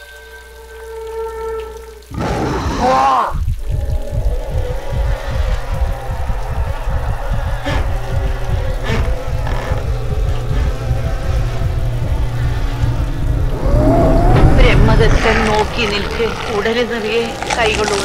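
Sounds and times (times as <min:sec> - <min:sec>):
deep pulsing drone: 0:03.3 - 0:18.0.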